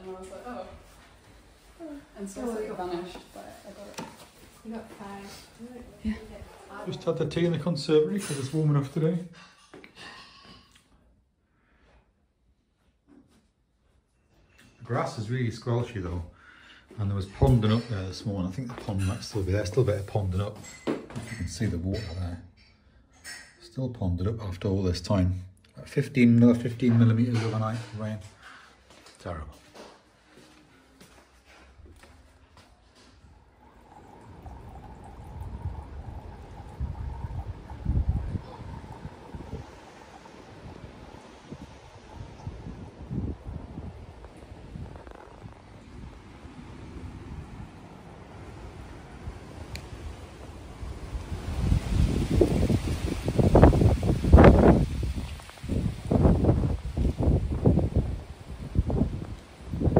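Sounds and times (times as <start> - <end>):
wind buffeting microphone: 33.7 - 59.9.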